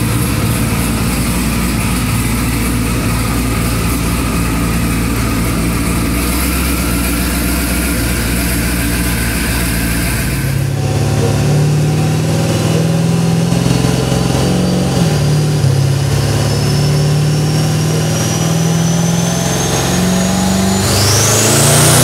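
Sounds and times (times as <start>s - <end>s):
car engine idling: 0.0s - 22.0s
higher louder engine note: 0.0s - 22.0s.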